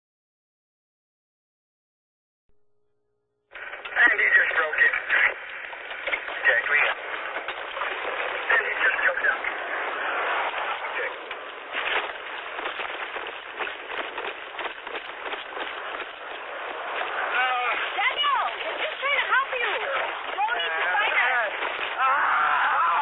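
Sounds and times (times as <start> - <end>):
radio crackling: 3.5 - 23.0
indistinct voices over radio: 3.6 - 11.3, 17.0 - 23.0
short clicks and rustles: 4.8 - 22.0.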